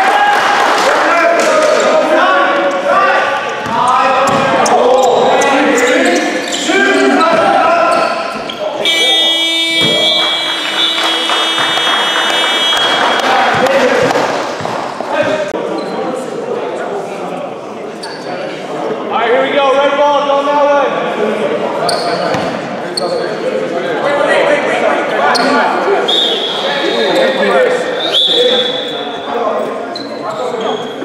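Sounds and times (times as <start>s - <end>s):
voices calling: 1.4s - 15.9s, 25.1s - 30.9s
game clock buzzer: 8.8s - 13.2s
basketball bouncing on floor: 13.5s - 15.4s.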